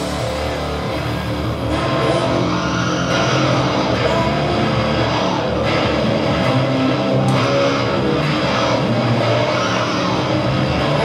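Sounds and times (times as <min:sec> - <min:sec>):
bass guitar: 0:00.0 - 0:11.0
electric guitar: 0:00.0 - 0:11.0
heavy rock band playing loudly: 0:00.0 - 0:11.0.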